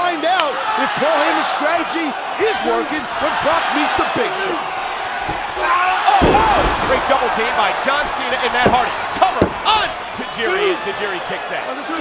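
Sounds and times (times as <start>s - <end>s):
arena crowd noise: 0.0s - 12.0s
body slamming onto canvas: 5.0s - 10.2s.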